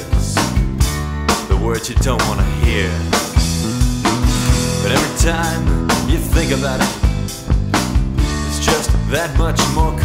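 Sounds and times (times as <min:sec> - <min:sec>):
rock band playing: 0:00.0 - 0:10.0
person singing: 0:04.4 - 0:07.3, 0:08.4 - 0:10.0.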